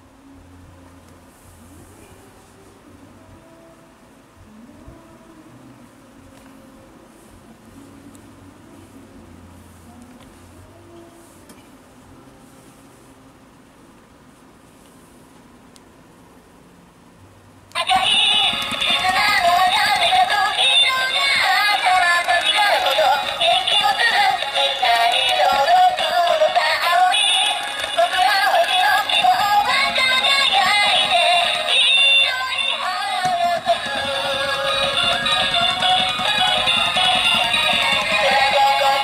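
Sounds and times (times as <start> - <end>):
toy playing electronic song: 17.8 - 39.0.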